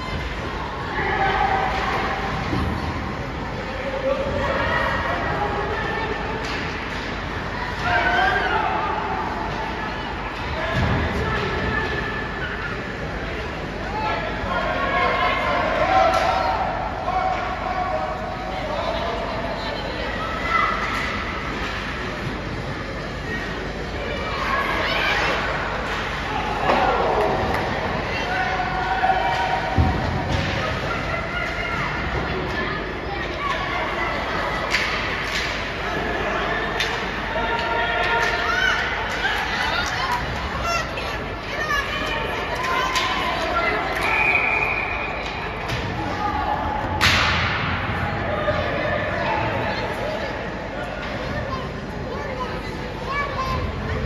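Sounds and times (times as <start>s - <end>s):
ice rink rushing noise: 0.0s - 54.0s.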